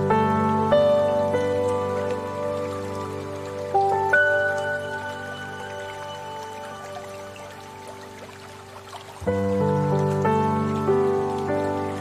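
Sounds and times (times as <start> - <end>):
calm sustained chords music: 0.0 - 12.0.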